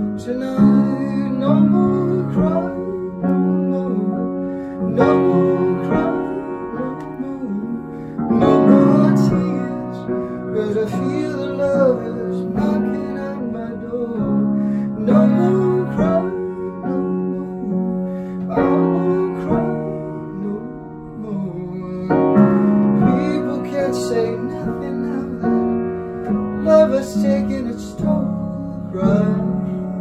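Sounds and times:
man singing: 0:00.0 - 0:30.0
upright piano chords: 0:00.0 - 0:30.0.

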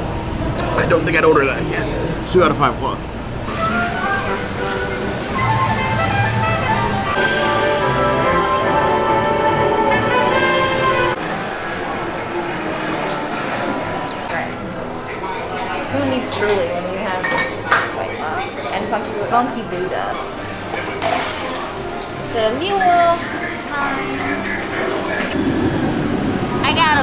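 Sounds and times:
bar room murmur: 0:00.0 - 0:27.0.

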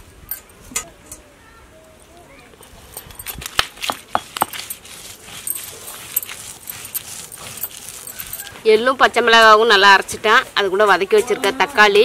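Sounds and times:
stone roller scraping grinding slab: 0:03.7 - 0:10.2
woman speaking: 0:08.6 - 0:12.0.

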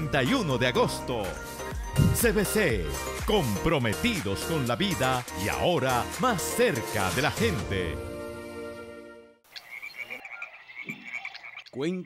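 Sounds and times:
background music: 0:00.0 - 0:09.4
frog chirping: 0:09.5 - 0:11.8
faint forest ambience: 0:09.5 - 0:11.9.

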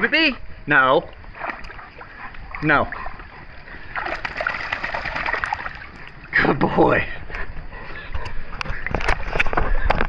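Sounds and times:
dog shaking off water: 0:04.0 - 0:05.9
droplets splashing into pool: 0:04.0 - 0:06.0.

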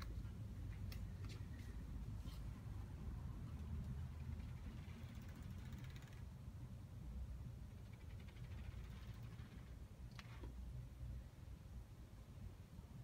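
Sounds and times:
low room rumble: 0:00.0 - 0:13.0.

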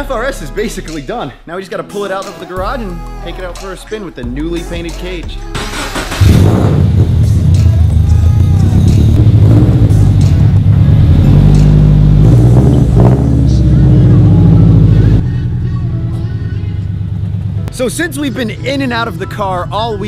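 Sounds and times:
loud car engine running: 0:05.8 - 0:15.2, 0:16.8 - 0:17.7.

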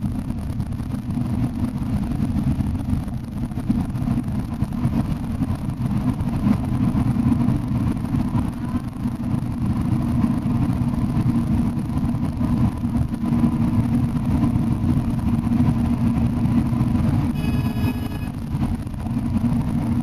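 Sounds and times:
bus engine and tyre drone: 0:00.0 - 0:20.0
brief high-pitched tone: 0:17.3 - 0:18.4.

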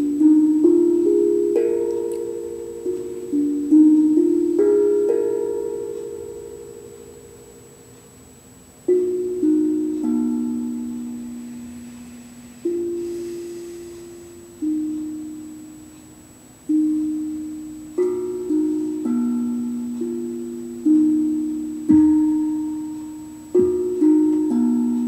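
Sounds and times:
steel tongue drum notes: 0:00.0 - 0:25.0.

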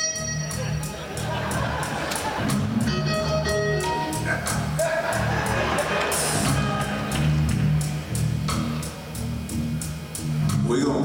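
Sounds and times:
cymbal beat: 0:00.0 - 0:10.8
bass line: 0:00.0 - 0:11.0
drums: 0:00.0 - 0:11.0
electric guitar lead lines: 0:00.0 - 0:11.0.

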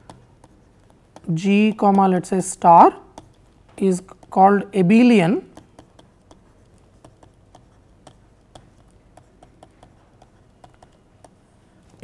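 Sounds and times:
stylus tapping on tablet: 0:00.0 - 0:11.4
low steady hum: 0:00.0 - 0:12.0.

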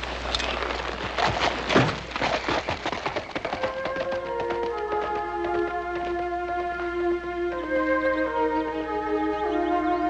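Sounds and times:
music: 0:03.6 - 0:10.0.

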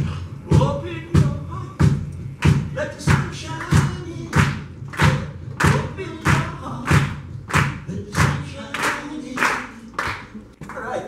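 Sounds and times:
heavy drum thumps: 0:00.0 - 0:08.5.

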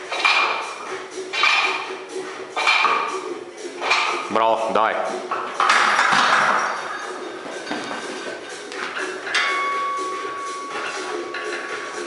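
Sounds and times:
barbell clanking into rack: 0:00.1 - 0:01.9, 0:02.6 - 0:03.2, 0:03.8 - 0:04.3, 0:05.3 - 0:08.0.

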